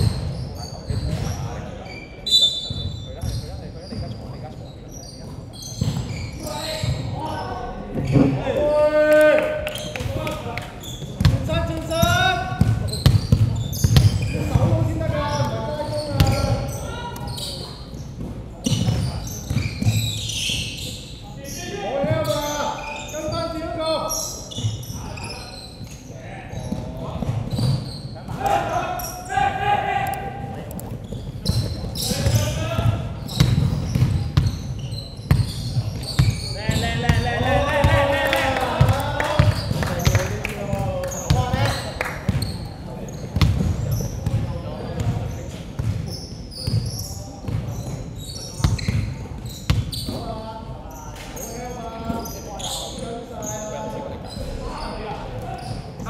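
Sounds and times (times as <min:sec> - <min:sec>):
players shouting: 0:36.7 - 0:40.4.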